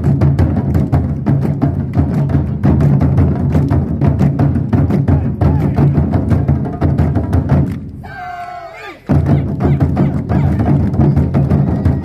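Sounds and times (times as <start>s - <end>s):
taiko drums booming: 0.0s - 12.0s.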